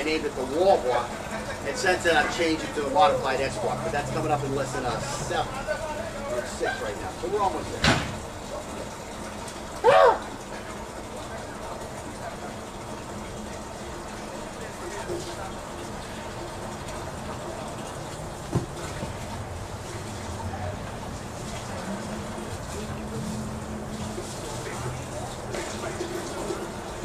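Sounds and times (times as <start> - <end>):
steady background noise: 0.0 - 27.0
man's loud exclamation: 9.8 - 10.2.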